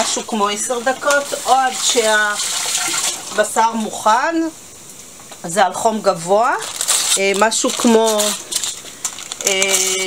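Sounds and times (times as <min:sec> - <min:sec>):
person speaking: 0:00.0 - 0:02.4, 0:05.4 - 0:08.5, 0:09.4 - 0:10.0
paper and foil crinkling: 0:06.1 - 0:10.0.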